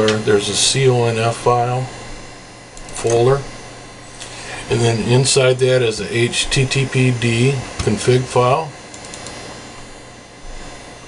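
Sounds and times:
background hiss: 0.0 - 11.0
faint hum: 0.0 - 11.0.

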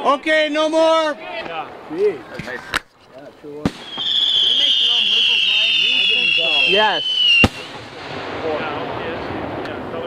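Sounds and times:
people talking faintly: 1.1 - 10.0
firework bangs: 3.6 - 10.0
high firework whistle: 3.7 - 7.8.

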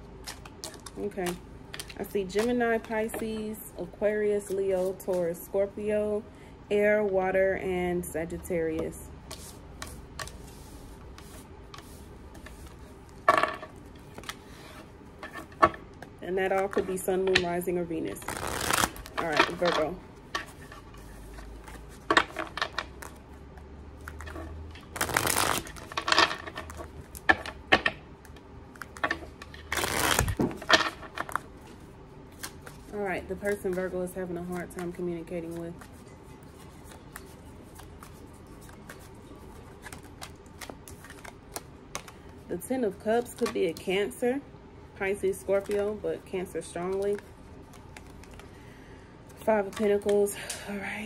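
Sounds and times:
cards being shuffled: 0.1 - 3.5, 9.3 - 15.8, 16.5 - 42.4, 46.8 - 48.6.

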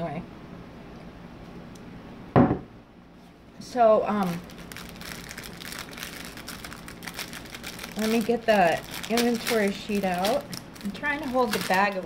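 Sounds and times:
plastic packaging crinkling: 4.2 - 12.0.

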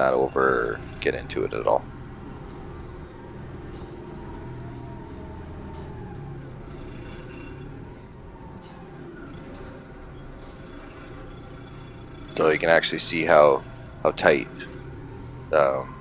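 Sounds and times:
machine engine low hum: 0.0 - 16.0.

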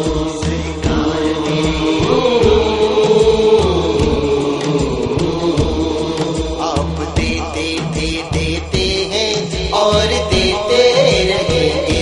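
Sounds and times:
steady low beat: 0.0 - 9.7
person singing long notes: 0.0 - 12.0.

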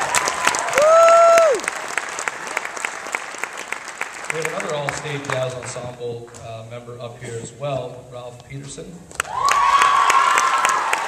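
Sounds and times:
audience applauding: 0.0 - 5.9, 9.2 - 11.0
person cheering woo: 0.6 - 1.7, 9.2 - 11.0.

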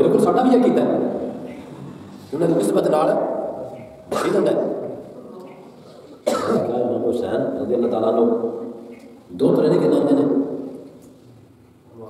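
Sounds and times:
man speaking over a microphone: 0.0 - 1.4, 2.3 - 5.0, 6.4 - 10.7.

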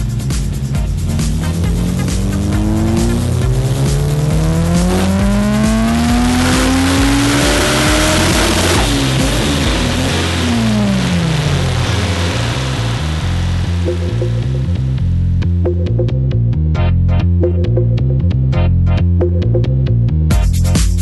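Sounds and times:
race car engine revving: 0.0 - 15.4
background music: 0.0 - 21.0.

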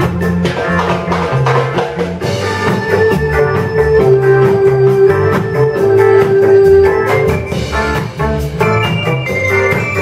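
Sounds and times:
electric bass: 0.0 - 10.0
electric guitar: 0.0 - 10.0
electric organ: 0.0 - 10.0.

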